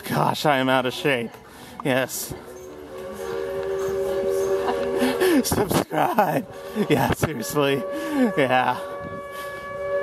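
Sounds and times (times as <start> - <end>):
steam locomotive whistle blast: 2.7 - 10.0.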